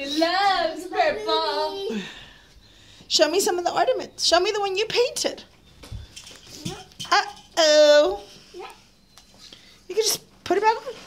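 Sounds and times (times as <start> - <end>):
child's vocal sound: 1.2 - 2.2.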